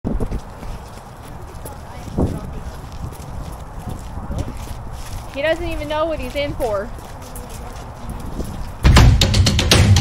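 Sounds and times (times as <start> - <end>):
footsteps on wet concrete: 0.1 - 9.2
faint voices: 0.6 - 8.9.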